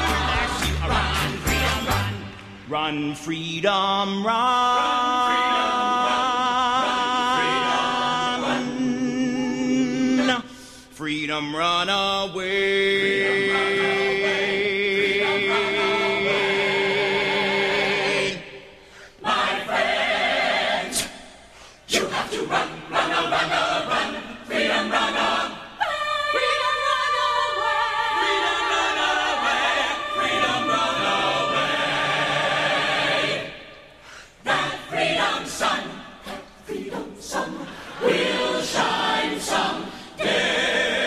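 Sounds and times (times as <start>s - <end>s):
chorus singing held chord: 0.0s - 21.2s, 21.9s - 41.0s.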